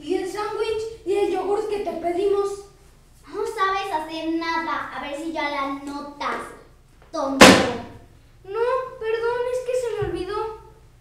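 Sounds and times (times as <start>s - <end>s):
loud sharp hit: 7.4s - 8.1s.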